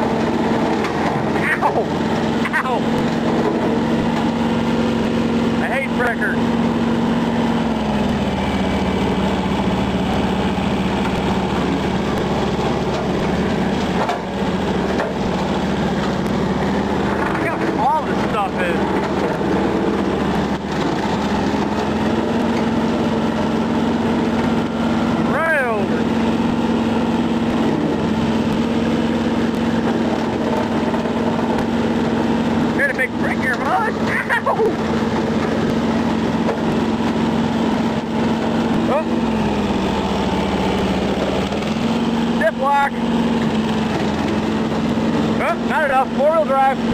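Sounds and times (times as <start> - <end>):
diesel tractor running under load: 0.0 - 46.9.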